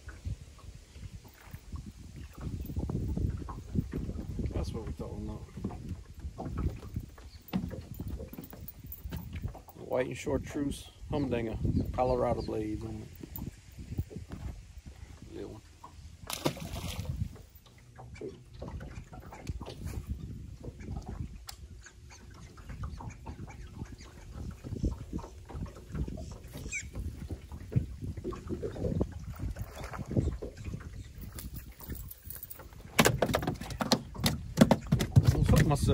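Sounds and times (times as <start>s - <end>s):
wind rumbling on microphone: 0.0s - 35.9s
knocks and clicks of handling: 31.4s - 35.9s.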